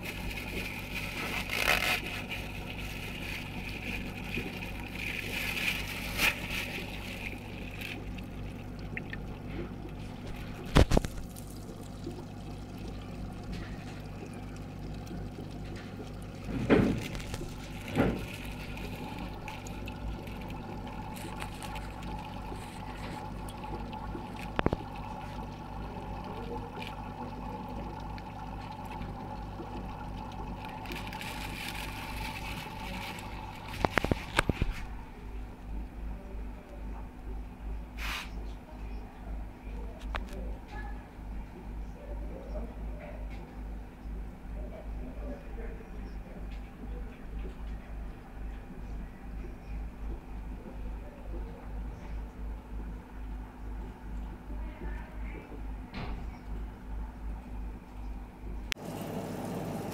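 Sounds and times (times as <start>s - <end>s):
aquarium water running: 0.0s - 38.7s, 39.4s - 59.9s
low equipment hum: 0.0s - 59.9s.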